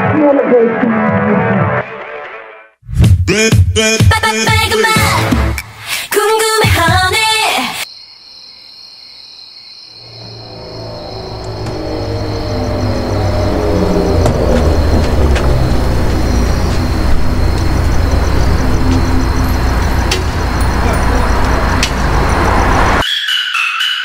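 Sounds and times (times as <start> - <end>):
crickets chirping: 7.8 - 23.0
low car engine rumble: 10.4 - 23.0.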